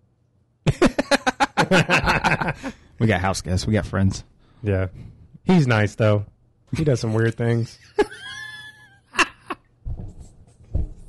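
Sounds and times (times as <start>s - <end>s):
men laughing: 0.7s - 2.9s, 7.1s - 9.6s.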